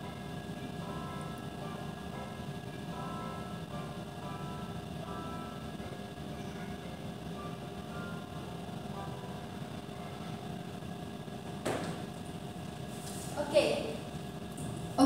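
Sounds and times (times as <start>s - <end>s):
faint background music from speakers: 0.0s - 15.0s
steady low hum: 0.0s - 15.0s.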